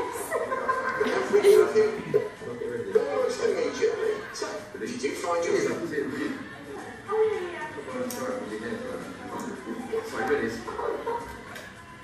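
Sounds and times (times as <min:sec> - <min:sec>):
people chuckling: 0:00.0 - 0:02.4, 0:09.6 - 0:11.5.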